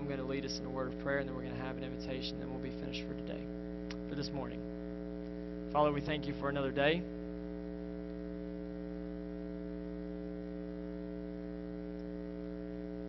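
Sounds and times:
electrical mains hum: 0.0 - 13.0.

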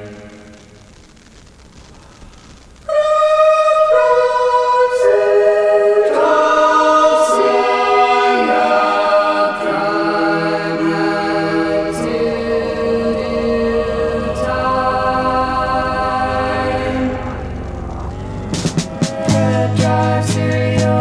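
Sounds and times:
wordless choir harmonies: 0.0 - 0.8, 2.9 - 21.0.

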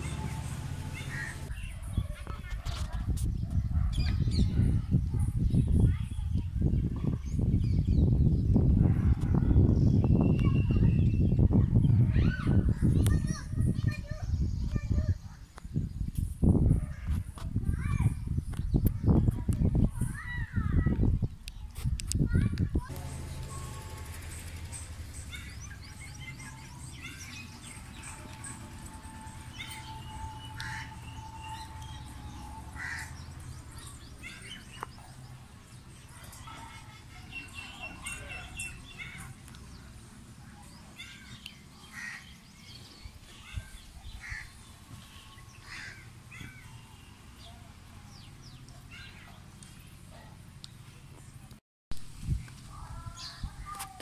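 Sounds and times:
small birds chirping: 0.0 - 2.5, 3.2 - 16.2, 22.8 - 51.6
crows cawing: 1.0 - 1.5, 29.8 - 33.3, 41.9 - 42.4, 44.2 - 44.6, 45.6 - 46.6.

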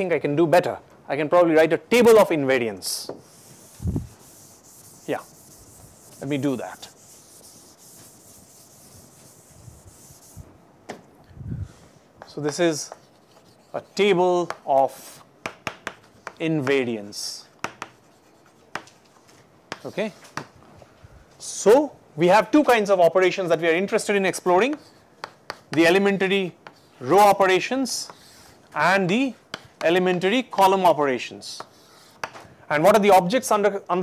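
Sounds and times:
duster rubbing a chalkboard: 3.1 - 10.5, 12.3 - 14.2, 17.8 - 18.8.

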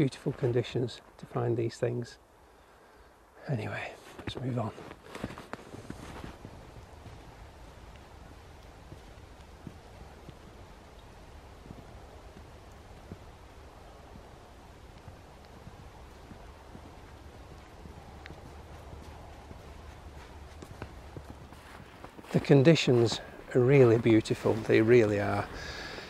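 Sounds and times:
low background noise: 0.0 - 26.0
footsteps crunching in snow: 4.0 - 26.0.

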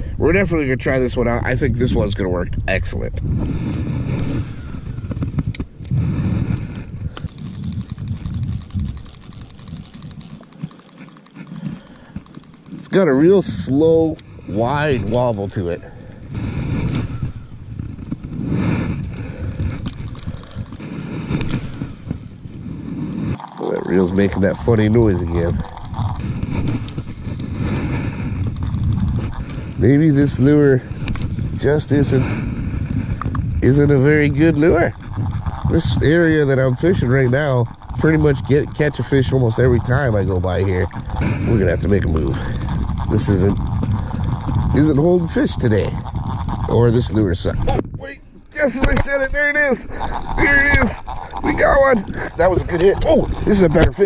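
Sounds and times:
wind rumbling on microphone: 0.0 - 54.0
fishing reel ticking: 3.7 - 47.8, 48.4 - 54.0.

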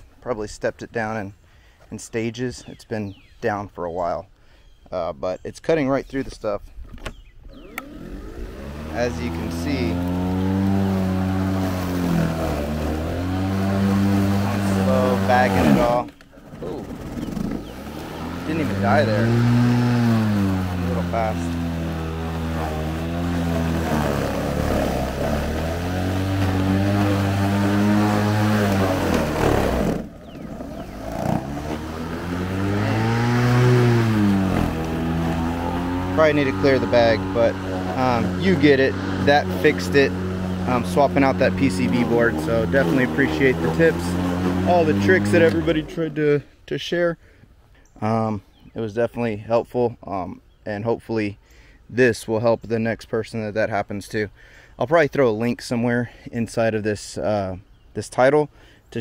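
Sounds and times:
mower click: 6.9 - 8.4
electric mower motor whine: 7.0 - 46.2.

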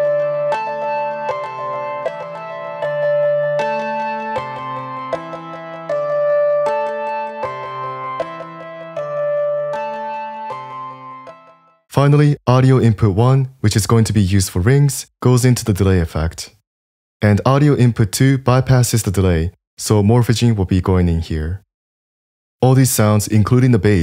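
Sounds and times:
synthesizer plucked notes with echoes: 0.0 - 11.7.

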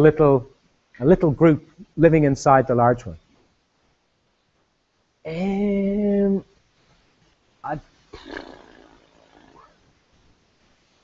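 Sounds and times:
man speaking: 5.3 - 6.5, 7.6 - 8.5.

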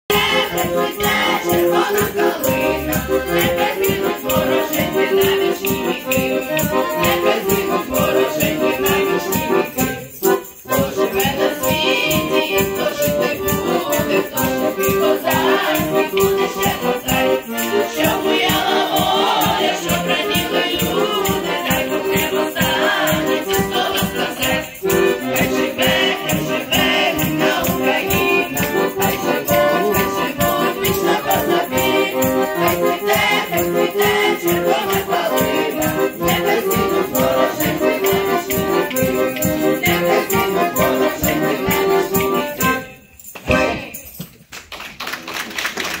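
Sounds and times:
steady percussion beat: 0.1 - 42.8
folk choir singing: 0.1 - 44.0
audience clapping: 44.4 - 46.0.

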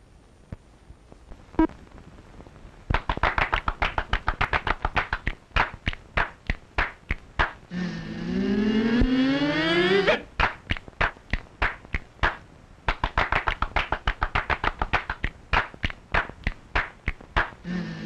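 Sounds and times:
rapid sharp percussion taps: 2.9 - 7.6, 10.4 - 17.6
rising pitched tone: 8.1 - 10.2.

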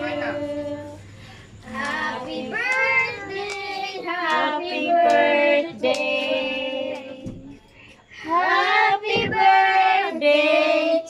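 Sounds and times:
child singing: 1.7 - 7.5, 8.3 - 11.0.

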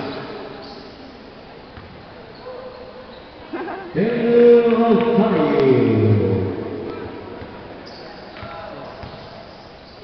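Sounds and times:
crowd murmur in hall: 0.0 - 10.0
basketball bouncing on court: 1.7 - 2.0, 8.3 - 9.4.

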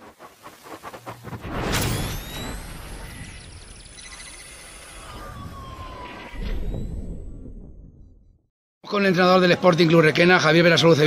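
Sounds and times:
falling electronic tone: 1.4 - 8.2
sweeping electronic tones: 1.6 - 7.5.

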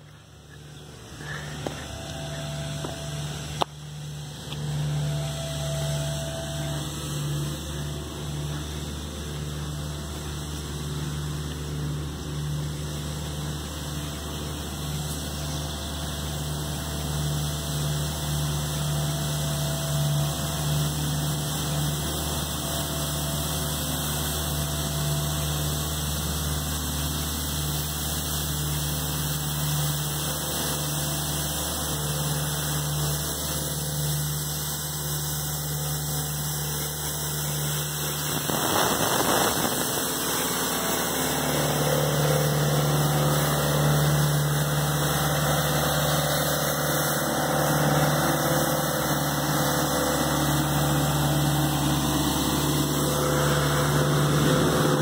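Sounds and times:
street sweeper engine humming: 0.0 - 55.0.

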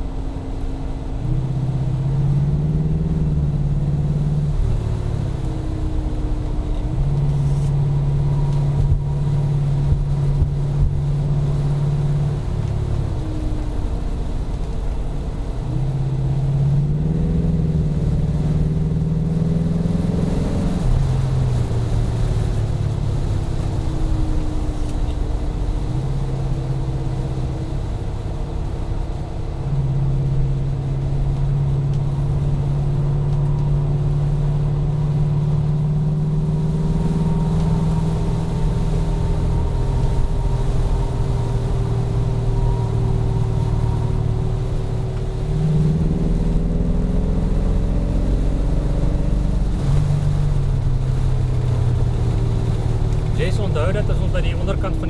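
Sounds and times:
car engine running: 0.0 - 55.0.

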